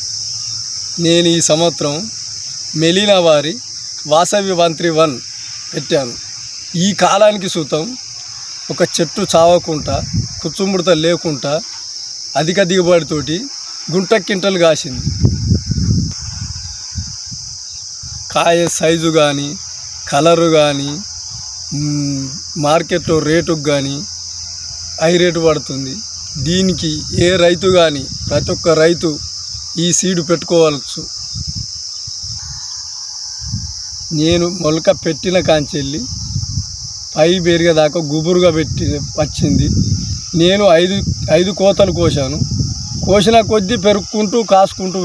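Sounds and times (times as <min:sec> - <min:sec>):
crickets chirring: 0:00.0 - 0:45.0
man's voice: 0:21.7 - 0:24.1, 0:25.0 - 0:29.2, 0:34.1 - 0:36.2, 0:37.2 - 0:45.0.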